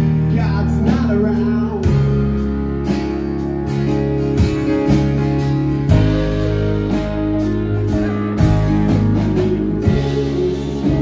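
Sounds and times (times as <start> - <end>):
bass notes: 0.0 - 11.0
guitar lines: 0.0 - 11.0.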